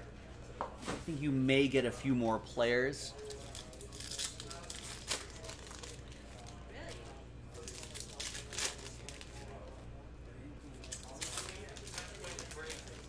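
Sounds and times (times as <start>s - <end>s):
foil pack tearing and crinkling: 3.3s - 6.6s, 7.6s - 9.5s, 10.8s - 13.0s.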